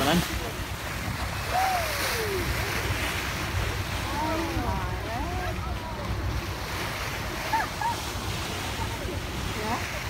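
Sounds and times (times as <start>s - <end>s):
sea noise: 0.0s - 10.0s
wind buffeting microphone: 0.0s - 10.0s.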